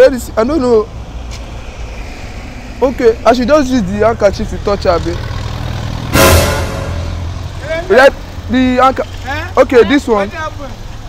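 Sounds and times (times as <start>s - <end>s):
traffic engine rumble: 0.0s - 11.0s.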